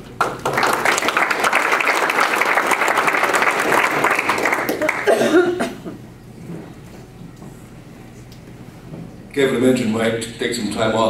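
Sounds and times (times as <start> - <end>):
audience applauding: 0.2 - 5.2.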